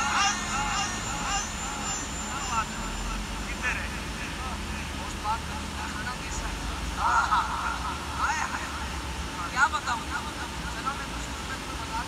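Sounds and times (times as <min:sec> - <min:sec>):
man's voice: 0:00.0 - 0:04.4.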